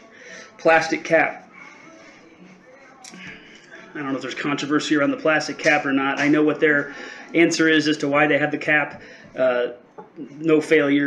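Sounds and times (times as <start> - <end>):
man breathing softly: 0.0 - 0.6, 6.9 - 7.3, 9.0 - 9.4
man speaking: 0.6 - 1.4, 3.9 - 11.0.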